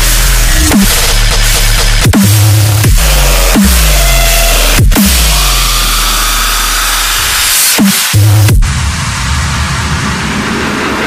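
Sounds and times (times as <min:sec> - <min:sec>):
deep sub-bass: 0:00.0 - 0:11.0
distorted synth bass: 0:00.0 - 0:11.0.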